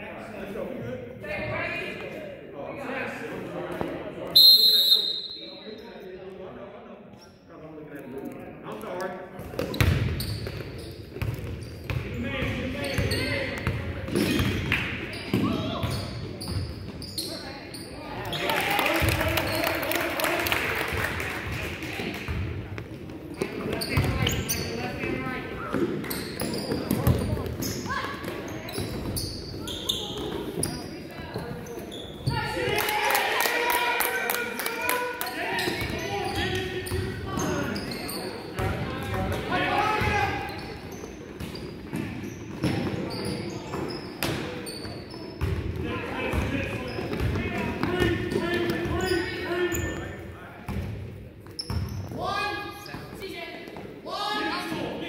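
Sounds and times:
voices echoing in gym: 0.0 - 55.0.

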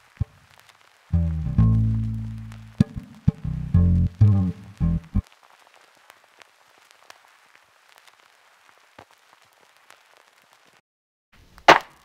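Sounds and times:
crackling clicks: 0.0 - 10.8
low hiss: 0.0 - 10.8.

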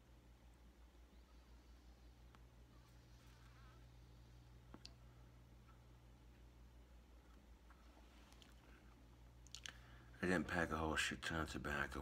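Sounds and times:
low steady hum: 0.0 - 12.0
faint click: 4.7 - 5.0.

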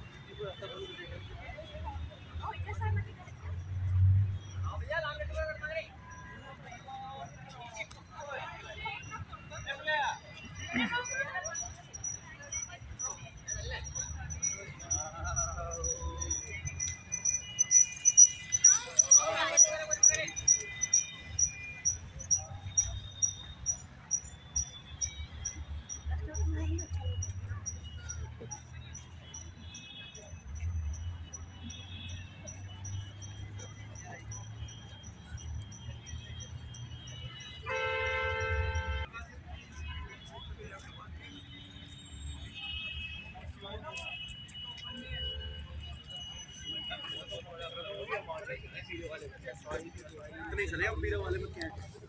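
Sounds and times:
crowd voices: 0.0 - 52.0
crickets chirping: 10.6 - 26.2
faint rapid high ticking: 11.1 - 29.8
vehicle horn two-tone blast: 37.6 - 39.1.

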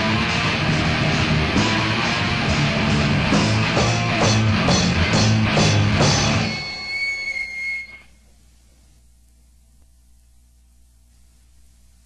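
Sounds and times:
band playing: 0.0 - 8.0
faint tape hiss: 6.0 - 12.0
high whistle-like tone: 6.3 - 8.2.

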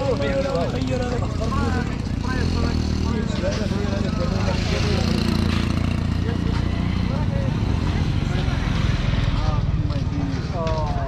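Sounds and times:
motorbike engine passing: 0.0 - 10.6
voices of shoppers and vendors: 0.0 - 11.0.

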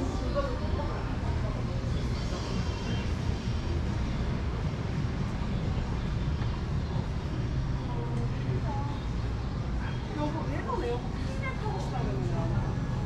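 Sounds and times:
distant traffic hum: 0.0 - 13.0.

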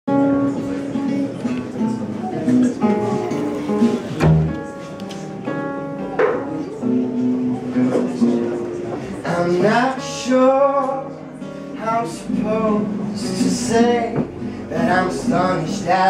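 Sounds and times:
acoustic guitar: 0.1 - 16.0
held melody notes: 0.1 - 16.0
plucked banjo: 0.1 - 16.0
upright double bass: 3.0 - 4.8.

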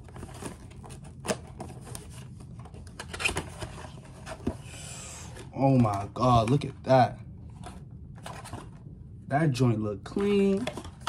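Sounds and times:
cardboard scraping and rustling: 0.0 - 4.6, 7.6 - 8.8.

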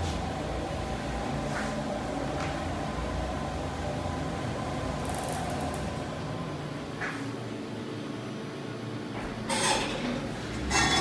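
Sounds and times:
elevator rumble and hum: 0.0 - 11.0.

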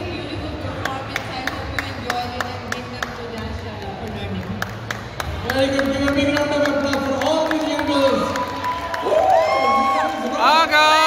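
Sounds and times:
murmur of crowd voices: 0.0 - 11.0
hand claps: 0.8 - 9.4.

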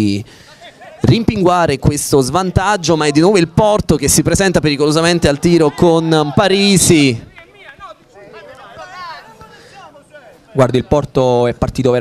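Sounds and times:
distant voices shouting: 2.0 - 11.0.

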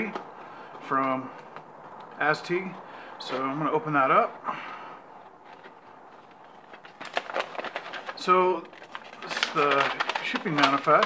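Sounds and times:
paper rustling and crackling: 5.2 - 11.0.

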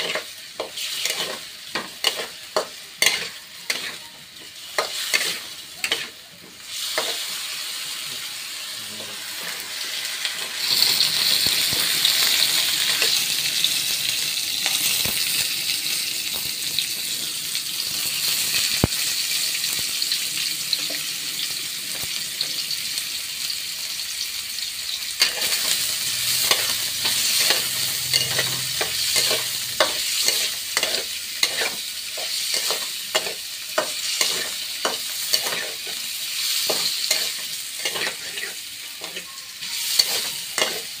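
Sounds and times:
food sizzling in hot oil: 0.0 - 41.0.

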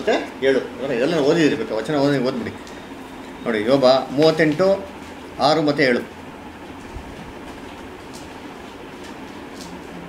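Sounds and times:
low background rumble and hiss: 0.0 - 10.0.

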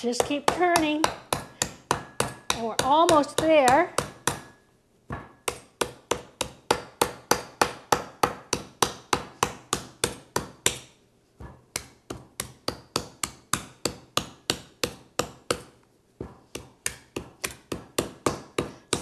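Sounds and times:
knife chopping coconut: 0.1 - 10.9, 11.7 - 19.0.

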